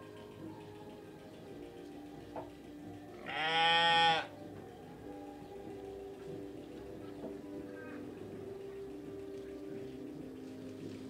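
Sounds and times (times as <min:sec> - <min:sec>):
sheep bleating: 0:03.2 - 0:04.3.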